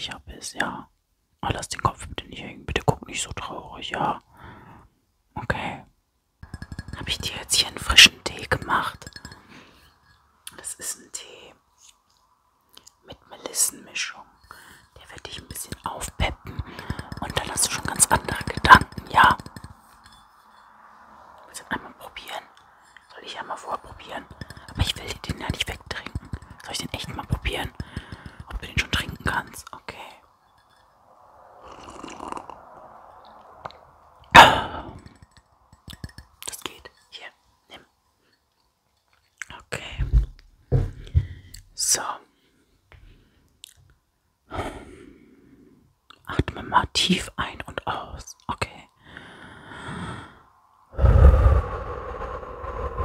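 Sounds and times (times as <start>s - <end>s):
whispering into a microphone: 0.0s - 4.3s, 5.3s - 5.9s, 6.9s - 9.3s, 10.5s - 11.9s, 13.0s - 19.6s, 21.4s - 30.3s, 36.4s - 37.9s, 39.4s - 40.2s, 41.8s - 42.4s, 46.2s - 48.9s.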